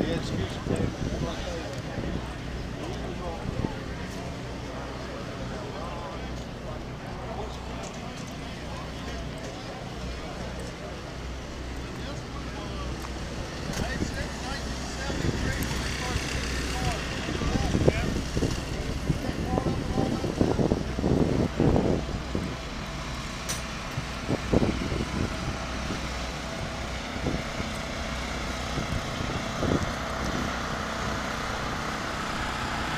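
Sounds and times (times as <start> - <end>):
low outdoor rumble: 0.0 - 32.9.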